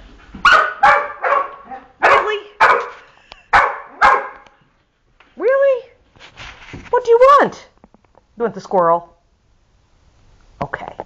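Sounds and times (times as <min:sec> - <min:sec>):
dog barking: 0:00.4 - 0:04.5.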